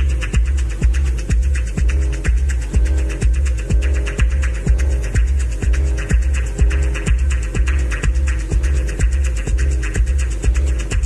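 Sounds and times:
droning bass: 0.0 - 11.0
hi-hats ticking: 0.0 - 11.0
techno kick drum: 0.0 - 11.0.

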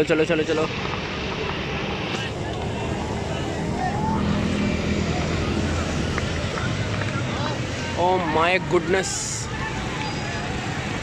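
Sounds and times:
traffic and engine hum: 0.0 - 11.0.

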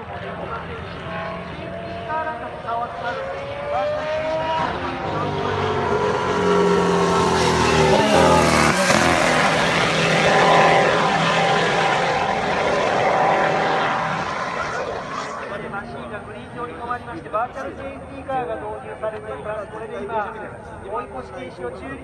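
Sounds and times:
racing car engine passing: 0.1 - 16.6.

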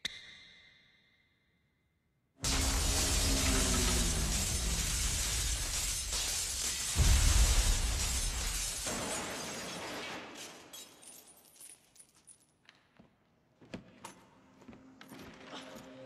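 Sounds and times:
heavy crash with shattering: 2.4 - 10.4
falling debris: 2.4 - 10.8.

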